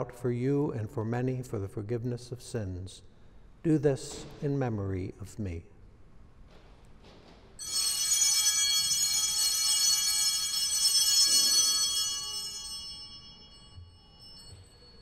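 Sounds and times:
altar bells ringing: 7.6s - 15.0s.

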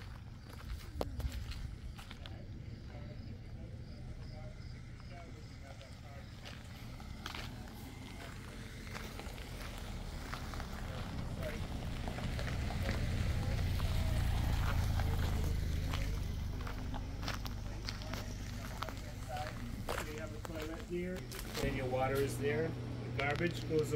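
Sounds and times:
footsteps on gravel: 0.0s - 3.2s, 4.9s - 23.9s.

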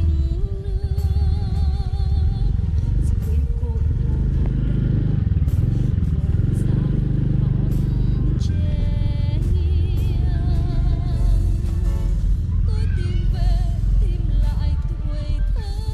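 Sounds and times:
motorbike engine at low speed: 0.0s - 15.9s
song with wavering singing voice: 0.0s - 15.9s.

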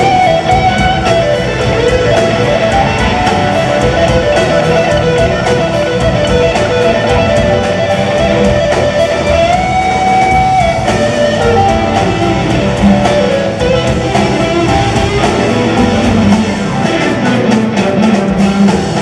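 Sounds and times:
electric guitar: 0.0s - 19.0s
live rock band playing: 0.0s - 19.0s.

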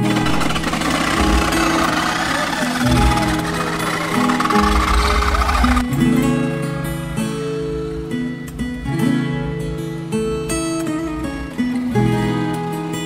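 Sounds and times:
acoustic guitar music: 0.0s - 13.0s.

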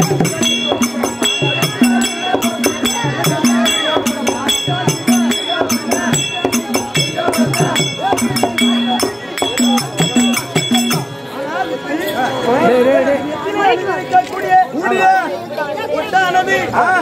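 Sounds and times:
drum: 0.0s - 11.3s
small hand cymbals: 0.0s - 12.9s
wavering melody line: 0.0s - 13.9s.

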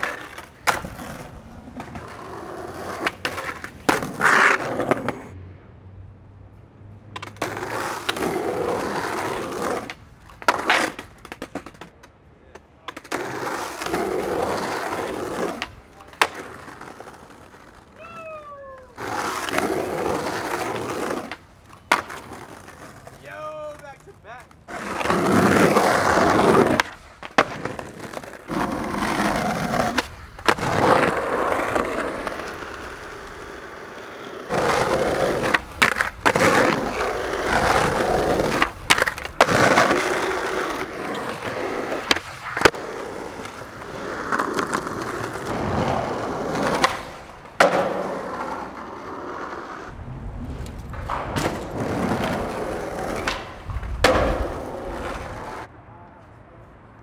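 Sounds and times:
skateboard clacks: 0.0s - 5.4s, 7.1s - 55.7s
skateboard wheels rolling on concrete: 0.0s - 57.0s.

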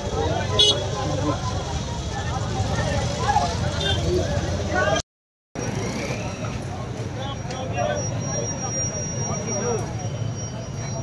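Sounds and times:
crowd talking: 0.0s - 5.0s, 5.6s - 11.0s
low rumble of vehicle engines: 5.6s - 11.0s.

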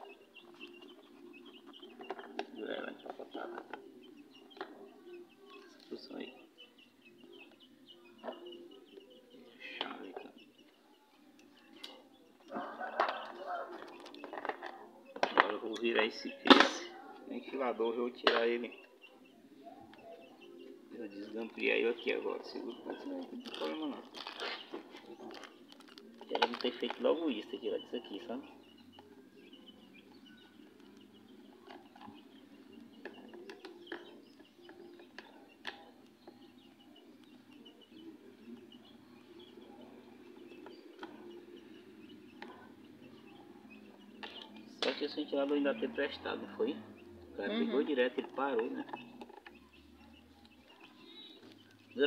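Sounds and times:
birds chirping: 0.0s - 52.0s.

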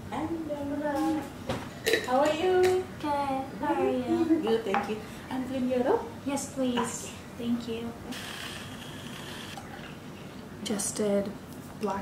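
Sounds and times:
milk frother whirring: 8.1s - 10.0s.

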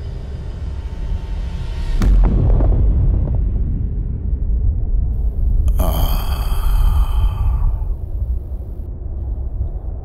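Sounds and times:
deep rumble: 2.1s - 10.0s.

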